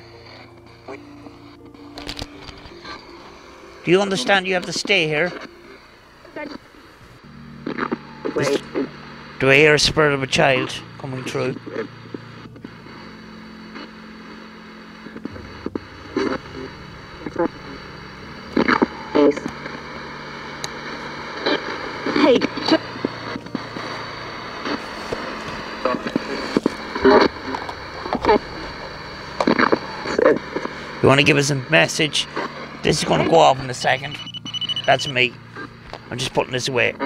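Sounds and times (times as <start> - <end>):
clipped broadcast voices: 0.0 - 37.0
static hiss: 0.0 - 37.0.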